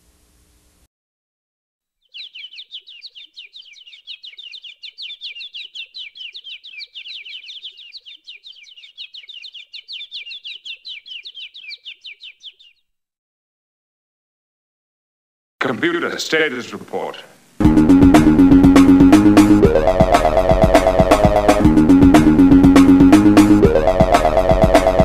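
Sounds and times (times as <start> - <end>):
bird chirping: 1.9 - 13.0.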